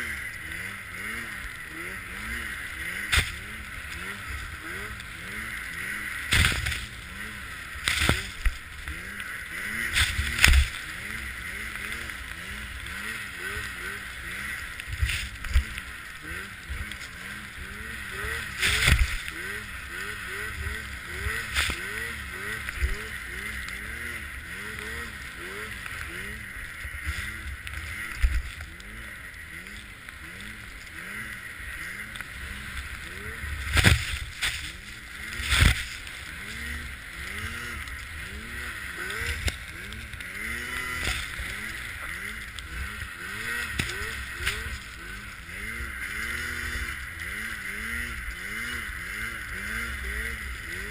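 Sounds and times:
snowmobile engine revving: 0:00.0 - 0:50.9
wind and track noise: 0:00.0 - 0:50.9.

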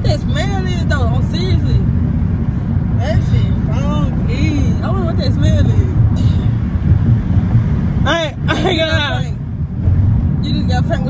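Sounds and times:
woman's voice: 0:00.0 - 0:01.9, 0:03.0 - 0:06.5, 0:08.0 - 0:09.4, 0:10.4 - 0:11.0
road and engine rumble in car: 0:00.0 - 0:11.0.

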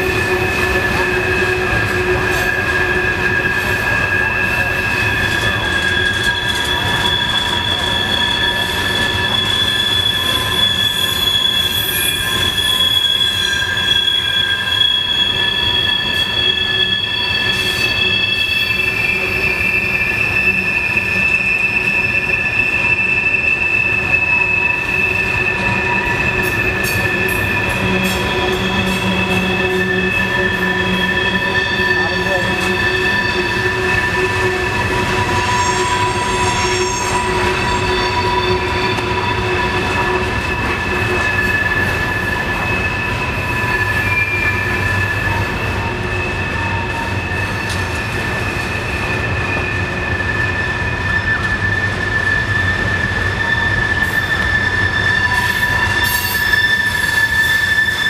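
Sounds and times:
rumble of wheels on rails: 0:00.0 - 0:58.0
train wheels squealing: 0:00.0 - 0:58.0.

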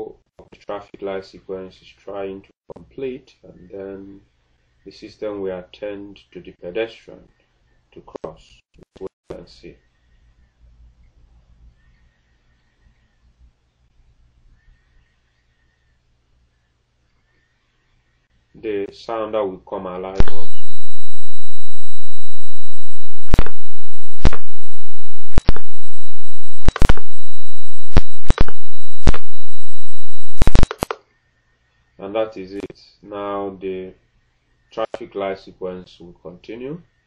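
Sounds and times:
faint thin high tone: 0:20.2 - 0:26.5
high-pitched crossing beep: 0:20.2 - 0:30.7
sharp clicks: 0:23.2 - 0:24.6, 0:25.2 - 0:25.7, 0:26.6 - 0:27.2, 0:27.9 - 0:31.0.

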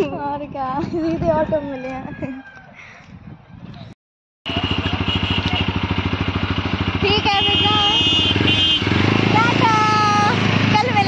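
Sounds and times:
scooter engine running: 0:04.5 - 0:11.0.

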